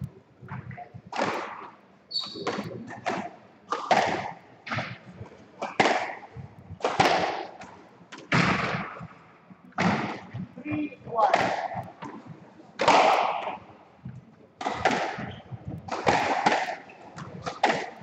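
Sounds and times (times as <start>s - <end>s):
squash ball hitting rackets and walls: 0.5s - 9.2s, 9.8s - 13.7s, 14.6s - 18.0s.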